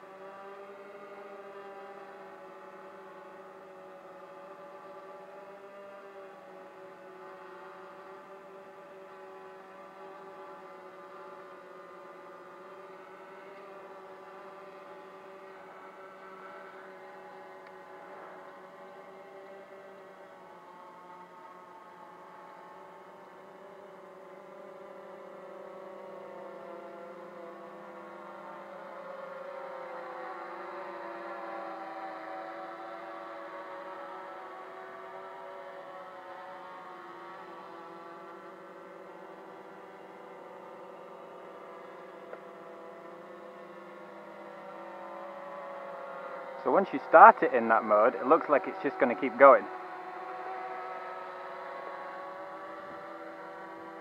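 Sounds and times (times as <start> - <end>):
quadcopter propellers buzzing: 45.1 - 54.0.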